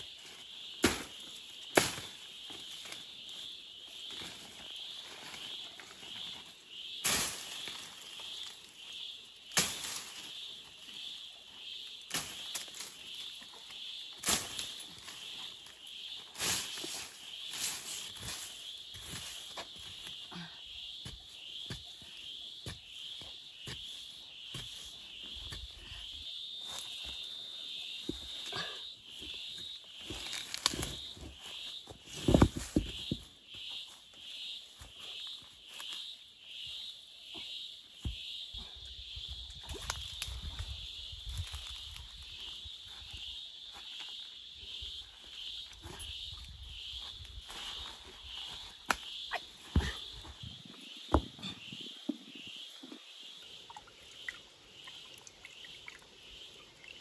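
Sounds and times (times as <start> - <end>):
high insect chorus: 0.0 - 57.0
tool and rock knocks: 32.2 - 33.2, 51.1 - 51.5.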